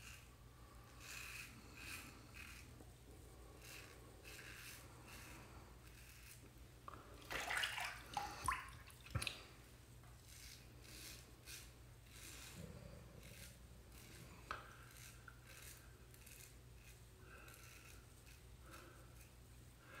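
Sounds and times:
razor scraping stubble: 0:00.0 - 0:07.2, 0:10.0 - 0:20.0.

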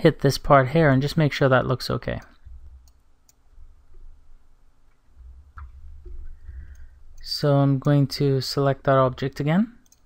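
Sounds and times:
low steady room hum: 0:00.0 - 0:10.0
computer mouse clicks: 0:02.2 - 0:03.4.

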